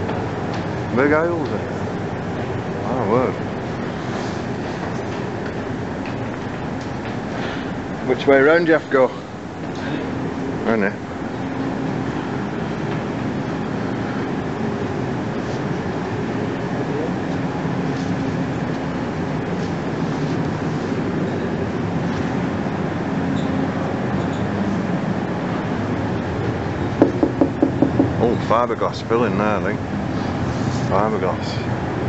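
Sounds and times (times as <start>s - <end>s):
air blowers whooshing hum: 0.0s - 32.0s.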